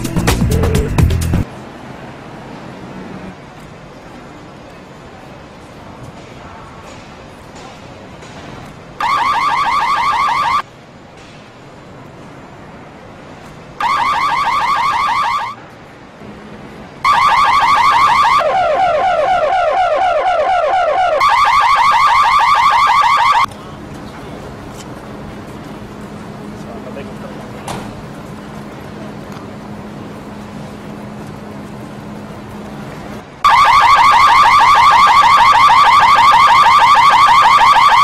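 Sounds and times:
car alarm chirping: 9.0 - 10.6, 13.8 - 15.6, 17.0 - 23.5, 33.4 - 38.0.

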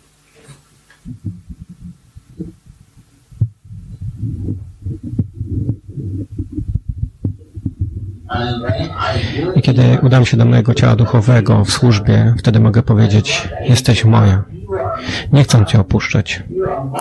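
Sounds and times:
microphone handling noise: 0.5 - 9.4.

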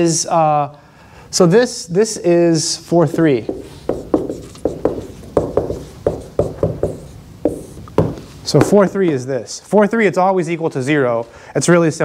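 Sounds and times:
marker writing on whiteboard: 3.0 - 9.0.

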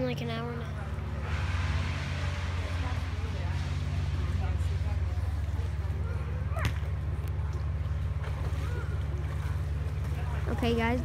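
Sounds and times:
distant voices chatting: 0.0 - 11.0
steady low rumble: 0.0 - 11.0.

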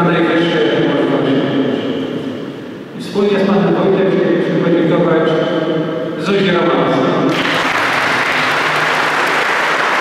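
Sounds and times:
man speaking into a microphone: 0.0 - 7.5
echo of a large hall: 0.0 - 10.0.

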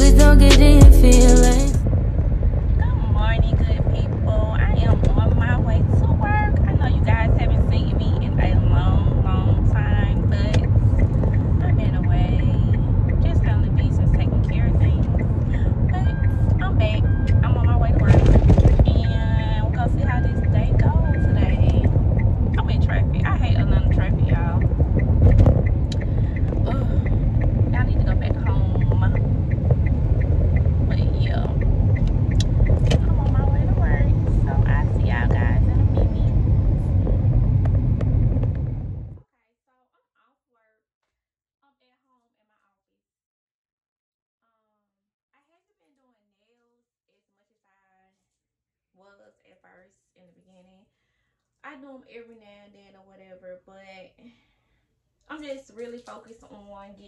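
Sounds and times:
woman's voice: 0.0 - 1.8, 2.8 - 22.0, 22.6 - 24.7, 25.9 - 29.3, 30.9 - 31.6, 32.4 - 37.3, 39.3 - 40.8, 41.6 - 42.9, 44.4 - 44.8, 45.4 - 48.2, 49.0 - 50.9, 51.6 - 54.4, 55.3 - 57.0
road and engine rumble: 0.0 - 39.2.

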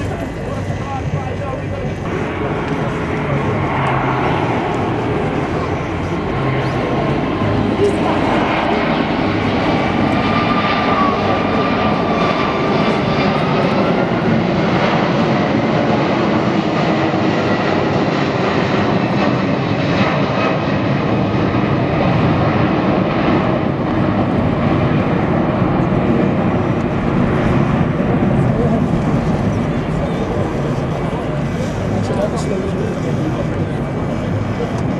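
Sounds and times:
jet airliner climbing overhead: 0.0 - 34.9.

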